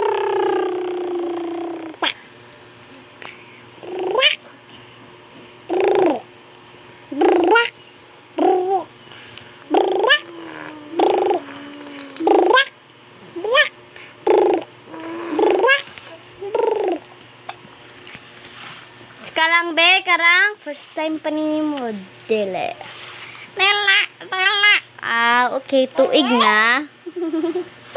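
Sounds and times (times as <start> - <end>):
high-pitched vocal calls: 0.0 - 2.3, 3.8 - 4.6, 5.6 - 8.9, 9.6 - 17.1.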